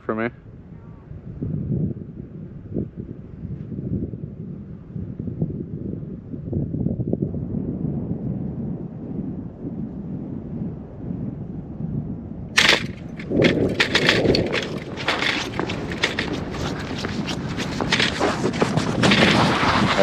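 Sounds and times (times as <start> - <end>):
wind rumble on microphone: 0.0 - 20.0
footsteps crunching on ice: 12.6 - 20.0
ice cracking: 12.6 - 20.0.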